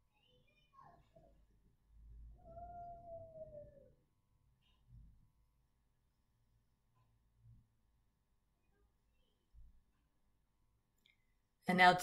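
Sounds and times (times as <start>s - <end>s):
faint drawn-out cry: 2.4s - 3.9s.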